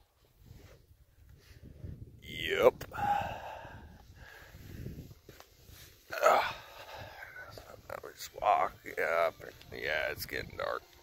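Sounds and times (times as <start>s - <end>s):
man groaning: 6.1s - 6.8s.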